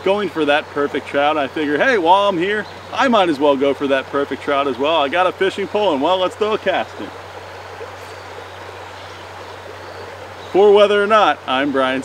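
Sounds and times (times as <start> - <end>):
creek water rushing: 0.0 - 12.0.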